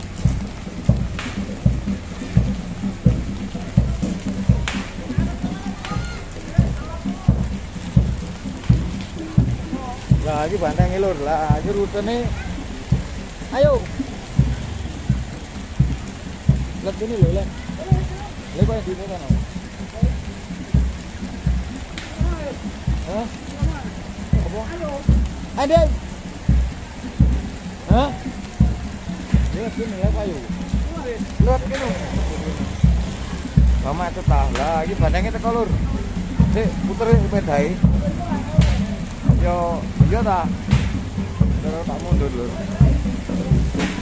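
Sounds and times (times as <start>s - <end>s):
big drum beating: 0.0s - 44.0s
rain falling: 0.0s - 44.0s
voices calling: 0.0s - 44.0s.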